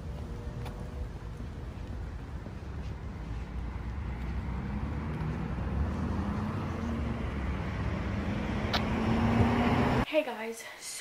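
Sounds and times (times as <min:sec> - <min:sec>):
distant road traffic: 0:00.0 - 0:10.1.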